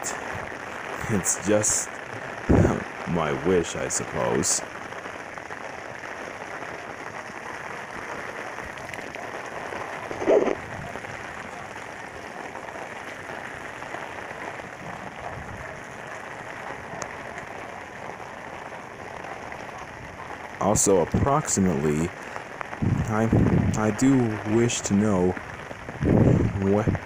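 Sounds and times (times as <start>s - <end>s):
rain on an umbrella: 0.0s - 27.0s.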